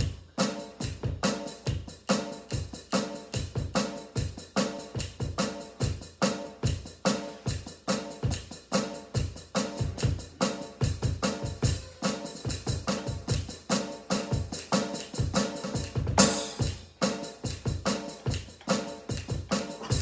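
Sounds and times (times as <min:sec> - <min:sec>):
electronic drum kit rock groove: 0:00.0 - 0:20.0.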